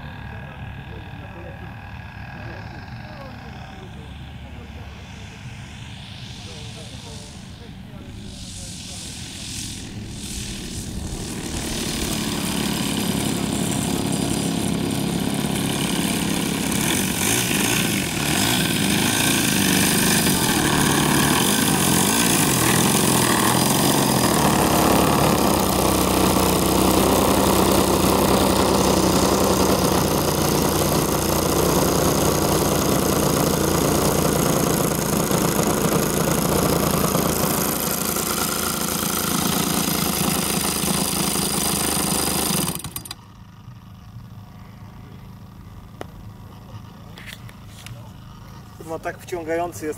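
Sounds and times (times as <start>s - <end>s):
model aircraft engine running: 0.0s - 49.9s.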